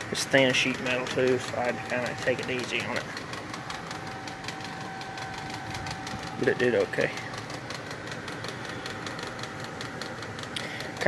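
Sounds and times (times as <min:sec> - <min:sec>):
faint steady whine: 0:00.0 - 0:11.0
fast even ticking: 0:00.0 - 0:11.0
machine running: 0:00.0 - 0:11.0.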